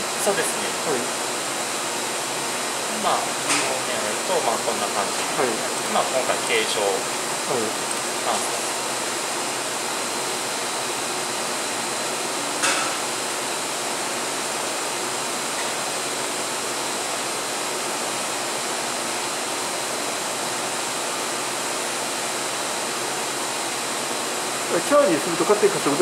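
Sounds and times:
steady rushing ventilation noise: 0.0 - 26.0.

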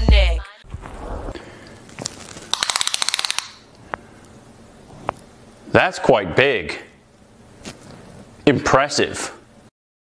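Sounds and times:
rapid sharp clicks: 2.5 - 3.6.

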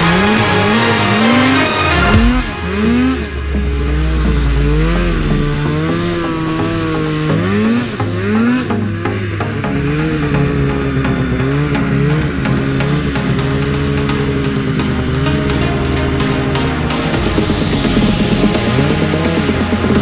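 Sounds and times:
snowmobile engine revving: 0.0 - 20.0.

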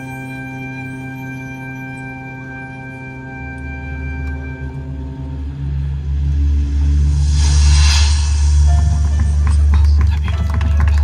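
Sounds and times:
marching band music: 0.0 - 7.0, 8.3 - 11.0.

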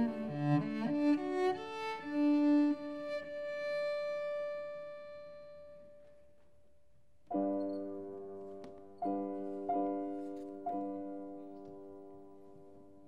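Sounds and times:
solo cello bowed notes: 0.0 - 5.8.

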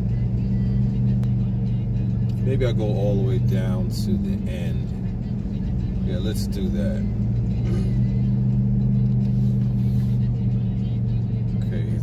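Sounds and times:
car engine hum: 0.0 - 12.0
road rumble: 0.0 - 12.0.

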